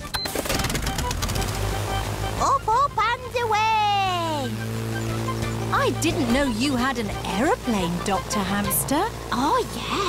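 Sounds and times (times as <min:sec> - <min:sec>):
cartoon propeller plane engine putter: 0:00.0 - 0:10.0.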